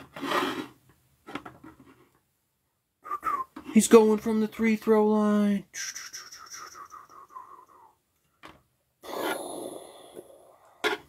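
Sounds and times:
breathy mouth whistle: 3.0s - 3.6s, 5.8s - 8.0s
mouth clicks: 3.0s - 3.6s, 5.8s - 8.0s
mouth hissing rush: 5.7s - 8.0s, 9.0s - 10.8s.

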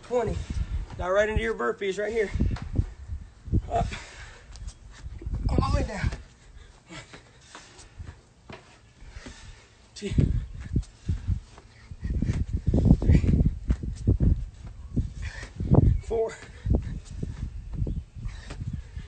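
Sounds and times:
man breathing hard and grunting: 3.6s - 8.2s, 9.0s - 13.8s, 15.0s - 17.4s.

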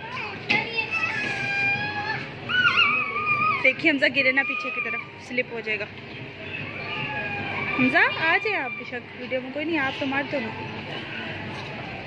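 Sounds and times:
child squealing: 0.9s - 5.2s.

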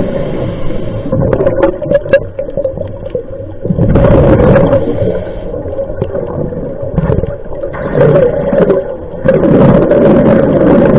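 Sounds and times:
bubbles gurgling underwater: 1.0s - 10.9s.

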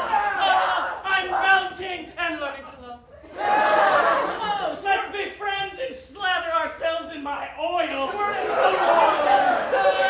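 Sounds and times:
people shouting wordless cries: 0.0s - 6.4s, 7.6s - 10.0s.

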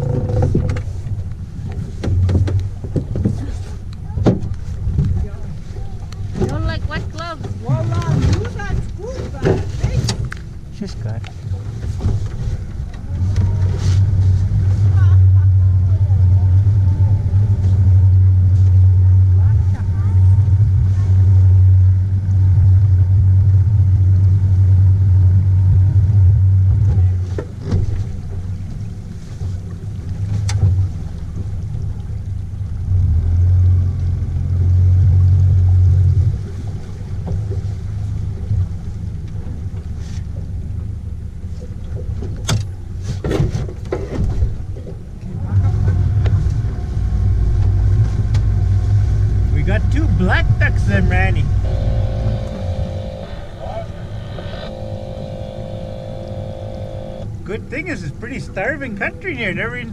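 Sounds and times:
outboard motor humming: 0.0s - 59.9s
person speaking: 49.5s - 54.0s.

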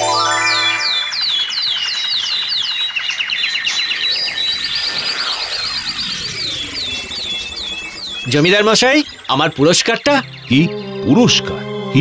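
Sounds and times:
flock of birds chirping: 0.5s - 12.0s.

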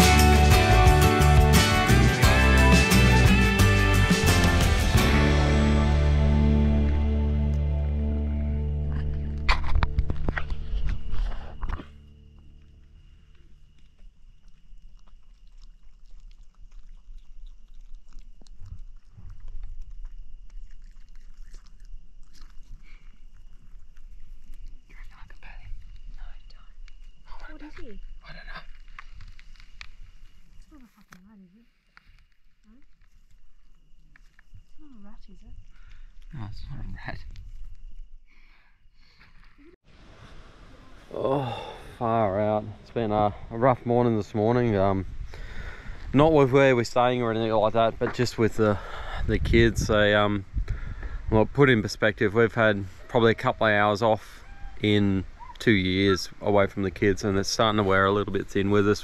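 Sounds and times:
background music: 0.0s - 9.6s
animal chewing and foraging: 0.0s - 39.8s, 43.8s - 59.0s
person's soft vocal sound: 40.7s - 42.0s.

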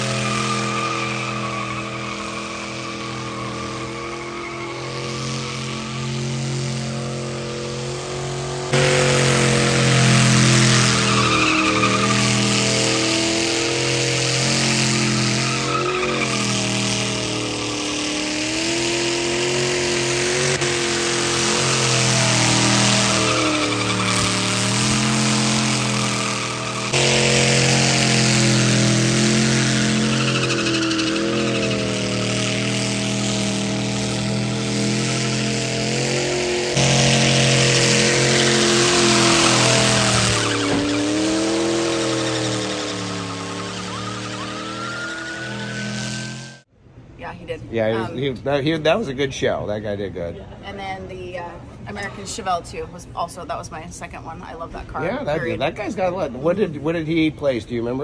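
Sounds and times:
pickup engine revving high: 0.0s - 46.7s
spinning tires hissing: 0.0s - 46.7s.

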